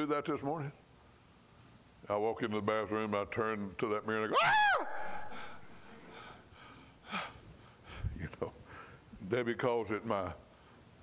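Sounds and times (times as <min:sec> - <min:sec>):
man gasping: 0:05.0 - 0:09.0.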